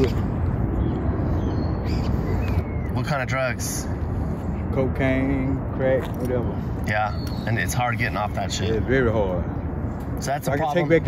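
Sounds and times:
low outdoor rumble: 0:00.0 - 0:11.0
faint bird chirps: 0:00.6 - 0:03.2, 0:06.4 - 0:08.2.

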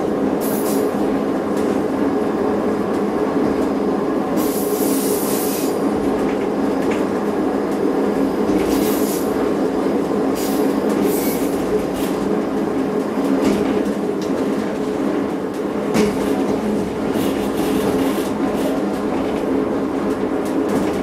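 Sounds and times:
diesel train engine drone: 0:00.0 - 0:21.0
train wheels squealing: 0:10.4 - 0:11.6.

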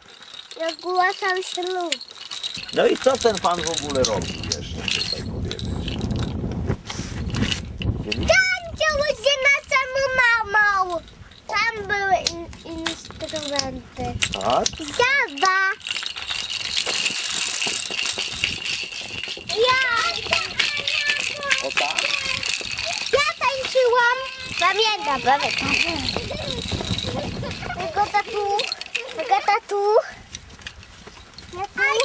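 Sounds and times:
wooden toys clattering on stone floor: 0:00.0 - 0:06.6, 0:07.2 - 0:32.0
child speaking: 0:00.6 - 0:02.0, 0:08.2 - 0:15.8, 0:19.5 - 0:30.2, 0:31.5 - 0:32.0.

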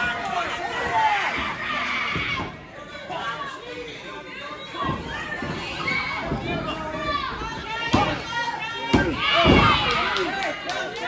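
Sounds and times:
crowd yelling: 0:00.0 - 0:11.0.

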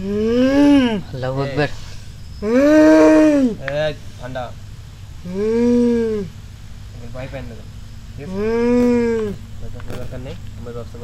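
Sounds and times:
long low moaning call: 0:00.0 - 0:01.3, 0:02.4 - 0:03.7, 0:05.2 - 0:06.5, 0:08.2 - 0:09.5.

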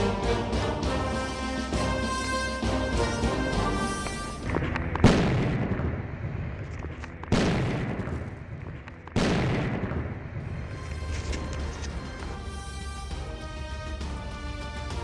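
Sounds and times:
music with sustained tones: 0:00.0 - 0:05.4, 0:10.4 - 0:15.0
deep booms: 0:04.4 - 0:10.8.

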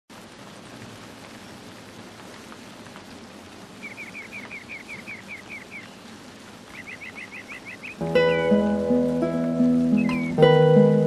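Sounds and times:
steady outdoor hiss: 0:00.1 - 0:11.0
small bird chirping: 0:03.8 - 0:06.1, 0:06.7 - 0:08.0, 0:09.9 - 0:10.4.

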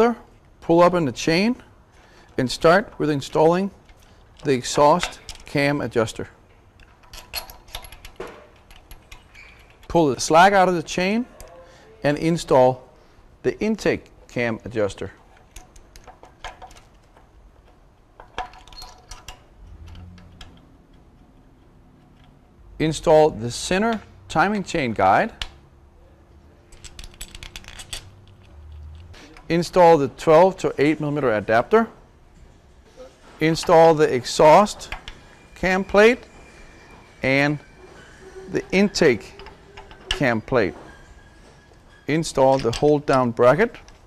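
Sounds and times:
light metallic clicks and rattles: 0:02.3 - 0:05.7, 0:06.5 - 0:10.2, 0:15.2 - 0:22.6, 0:26.7 - 0:29.6.

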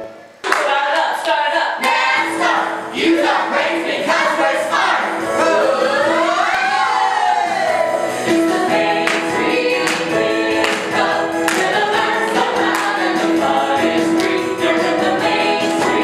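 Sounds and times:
children singing together: 0:01.8 - 0:07.6, 0:08.3 - 0:16.0
instrumental accompaniment with beat: 0:07.4 - 0:16.0.

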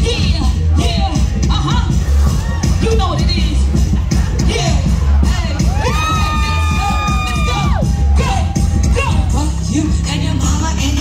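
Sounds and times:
hip hop beat with heavy bass: 0:00.0 - 0:11.0
crowd cheering: 0:05.0 - 0:09.4.

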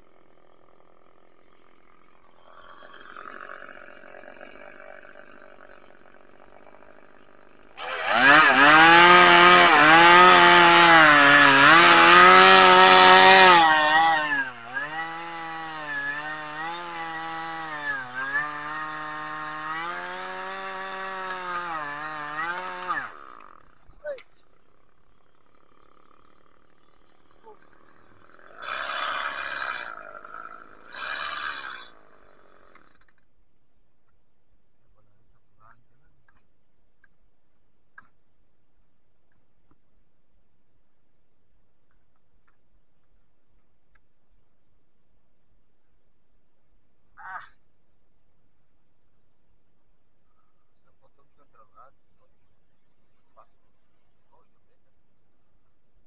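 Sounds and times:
chainsaw cutting tree trunk: 0:00.0 - 0:33.3.

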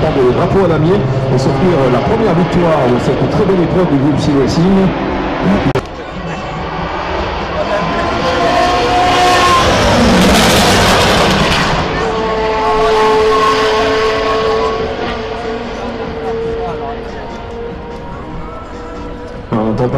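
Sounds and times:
race car engine passing: 0:00.0 - 0:19.7.

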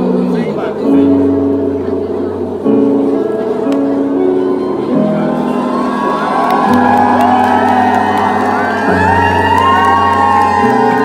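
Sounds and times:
audience cheering and whooping: 0:04.3 - 0:11.0.

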